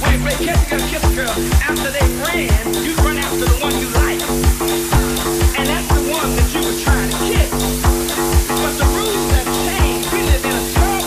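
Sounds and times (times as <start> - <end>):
four-on-the-floor kick drum: 0.0 - 11.0
sustained bass notes: 0.0 - 11.0.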